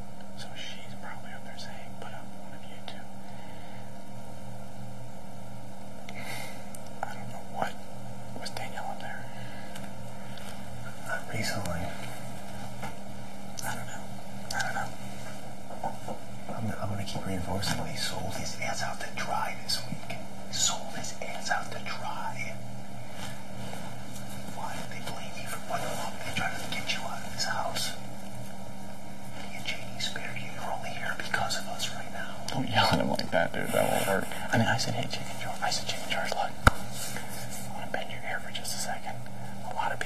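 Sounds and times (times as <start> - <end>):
electrical hum and hiss: 0.0 - 40.0
person whispering: 0.4 - 3.1, 7.0 - 7.8, 8.4 - 9.3, 10.9 - 12.0, 13.6 - 15.0, 15.8 - 22.6, 24.4 - 28.1, 29.3 - 36.7, 37.6 - 40.0.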